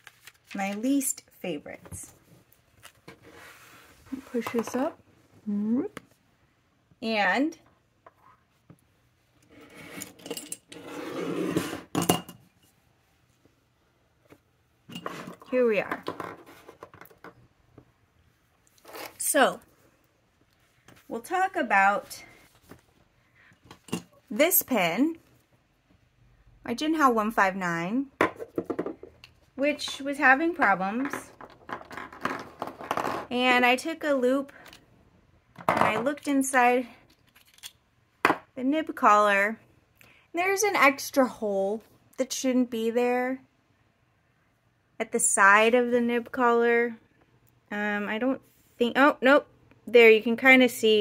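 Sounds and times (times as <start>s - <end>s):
woman speaking: 0.5s - 2.1s, 4.1s - 6.0s, 7.0s - 7.6s, 15.5s - 16.0s, 19.2s - 19.6s, 21.1s - 22.3s, 24.3s - 25.2s, 26.7s - 28.1s, 29.6s - 31.3s, 33.3s - 34.5s, 35.8s - 37.0s, 38.6s - 39.6s, 40.4s - 43.4s, 45.0s - 47.0s, 47.7s - 51.0s.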